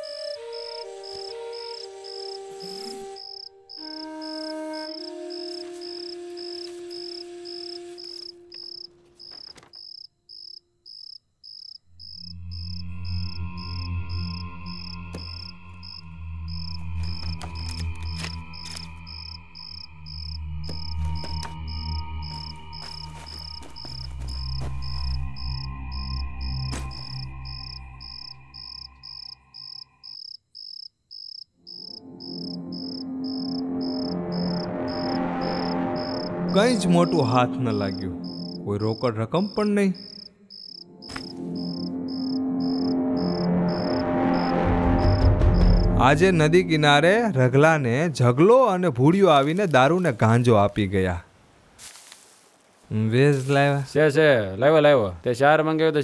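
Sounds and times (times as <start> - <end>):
film background music: 0.0 - 9.7, 11.9 - 30.1, 31.7 - 49.8
crickets chirping: 0.0 - 47.3
low sustained drone: 12.3 - 29.5.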